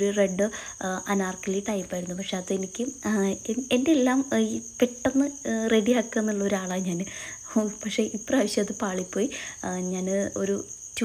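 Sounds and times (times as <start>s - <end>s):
woman talking: 0.0s - 11.0s.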